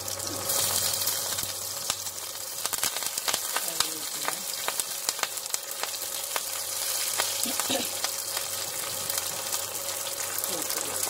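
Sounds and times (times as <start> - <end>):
chillies frying in hot oil: 0.0 - 11.0
oil crackling and popping: 0.0 - 11.0.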